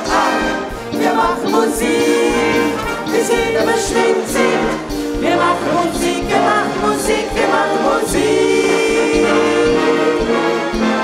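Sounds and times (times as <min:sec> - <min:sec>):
men singing: 0:00.0 - 0:11.0
wind band with clarinets: 0:00.0 - 0:11.0.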